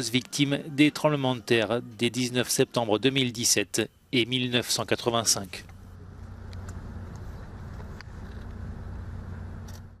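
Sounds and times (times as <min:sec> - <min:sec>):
low outdoor rumble: 0:03.8 - 0:10.0.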